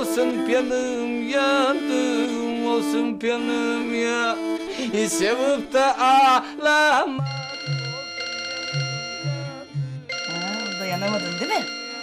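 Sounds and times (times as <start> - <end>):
electronic telephone ringing: 7.2 - 12.0
person speaking: 10.3 - 11.9.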